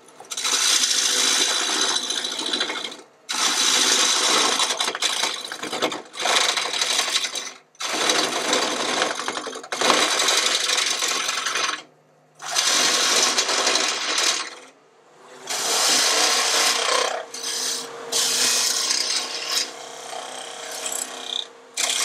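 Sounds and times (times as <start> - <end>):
scraper cutting spinning wood: 12.4 - 14.6, 15.5 - 22.0.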